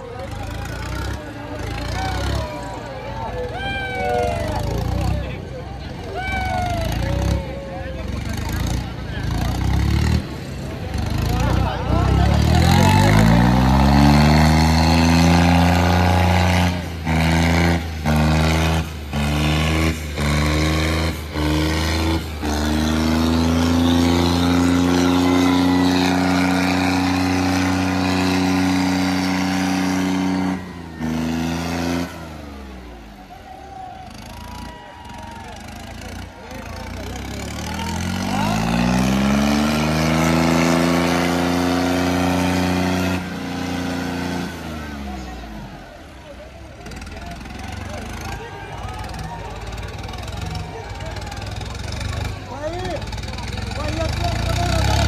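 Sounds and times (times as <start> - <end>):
tractor diesel engine revving: 0.0 - 55.0.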